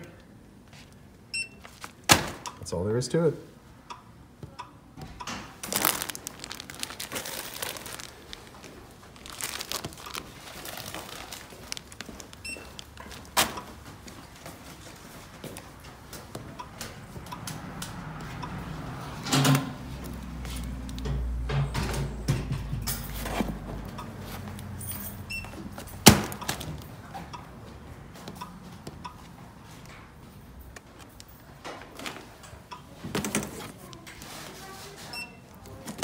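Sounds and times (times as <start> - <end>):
packages crinkling and rustling: 1.6 - 2.3, 5.5 - 16.5, 22.9 - 27.1, 33.0 - 36.0.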